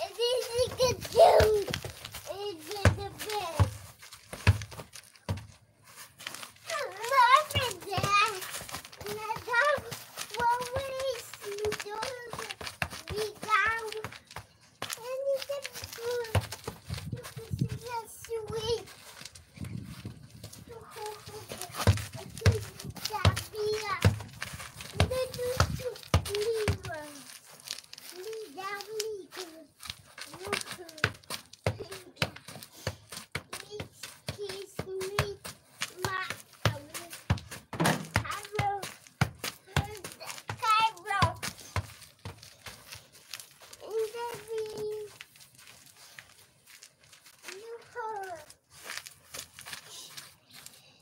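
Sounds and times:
toddler babbling: 0.0 - 1.7
short knocks and thumps: 36.7 - 42.4.

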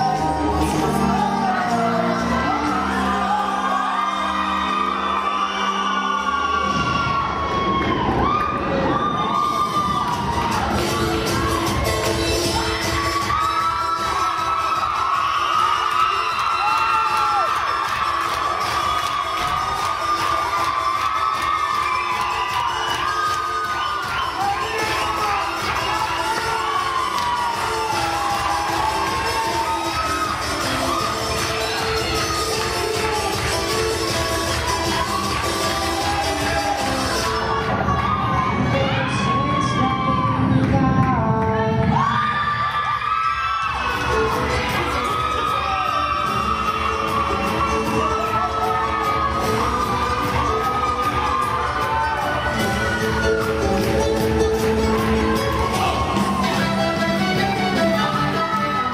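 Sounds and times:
dance music with steady beat: 0.0 - 5.1, 9.2 - 42.1, 43.7 - 58.9
crowd shouting and cheering: 0.0 - 58.9.

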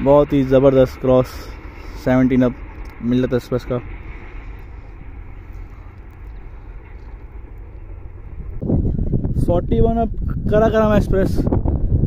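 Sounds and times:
louder deeper rumble: 0.0 - 12.0
low outdoor rumble: 0.0 - 12.0.

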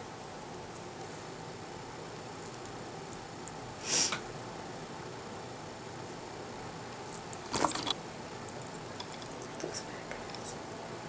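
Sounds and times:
breathy whisper: 9.0 - 10.6.

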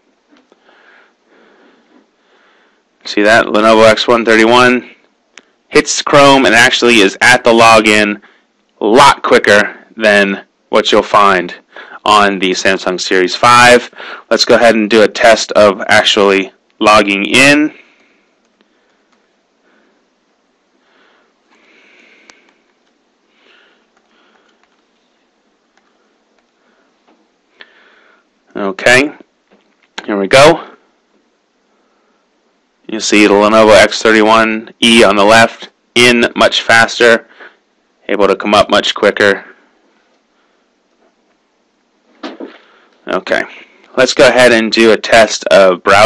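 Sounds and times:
faint room hiss: 0.0 - 46.0
soft breaths through nose: 0.5 - 2.9.

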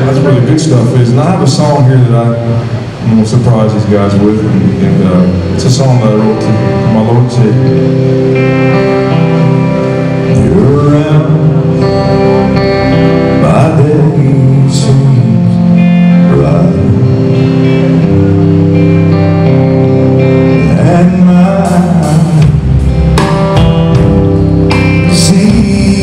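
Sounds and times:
electric guitar: 0.0 - 26.0
man singing: 3.1 - 7.8, 10.3 - 12.2, 13.2 - 17.4, 20.5 - 22.7, 24.7 - 26.0.

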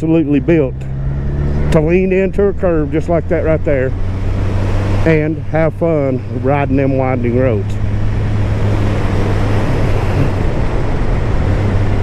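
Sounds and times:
wind rushing over microphone: 6.6 - 12.0.

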